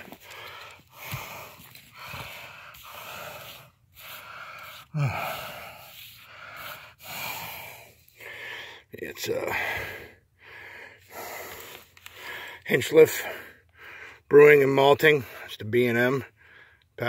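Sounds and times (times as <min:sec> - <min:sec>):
man breathing heavily: 0:00.0 - 0:14.3, 0:16.3 - 0:17.0
man grunting: 0:04.9 - 0:05.6.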